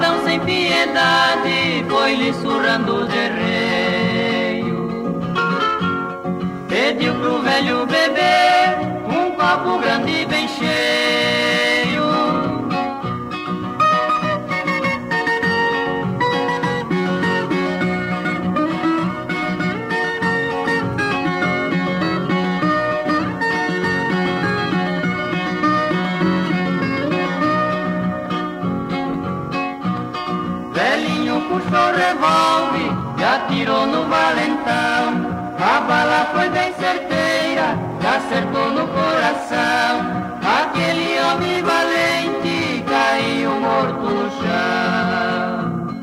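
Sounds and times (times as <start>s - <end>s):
acoustic guitars playing: 0.0s - 46.0s.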